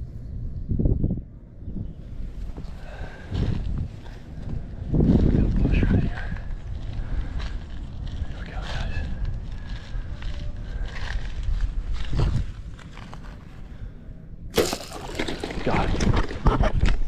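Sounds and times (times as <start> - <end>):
wind on microphone: 0.0 - 17.0
footsteps crunching on dry ground: 2.3 - 13.8.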